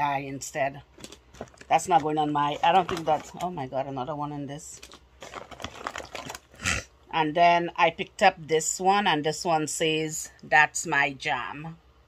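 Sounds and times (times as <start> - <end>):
crinkling rustles: 0.8 - 3.8, 4.6 - 6.6.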